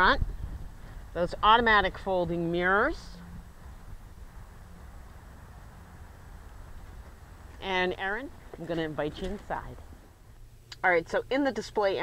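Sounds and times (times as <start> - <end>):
low rumble: 0.0 - 10.6.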